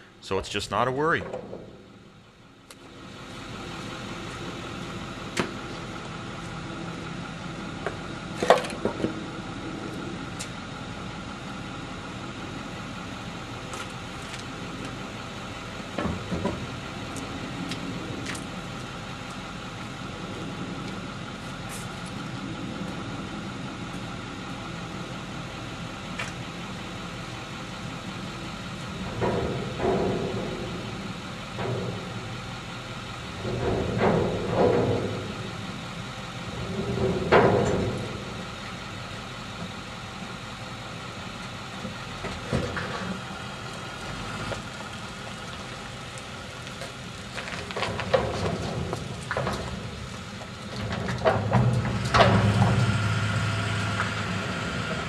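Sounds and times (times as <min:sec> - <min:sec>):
truck engine accelerating: 0:00.0 - 0:55.0.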